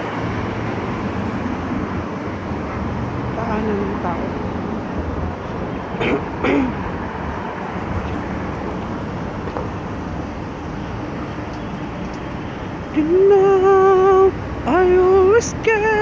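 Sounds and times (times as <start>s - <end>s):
city road traffic: 0.0s - 16.0s
person coughing: 6.0s - 6.8s.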